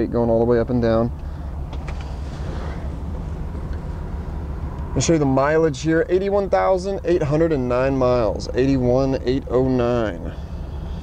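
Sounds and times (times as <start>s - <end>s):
engine idling low rumble: 0.0s - 11.0s.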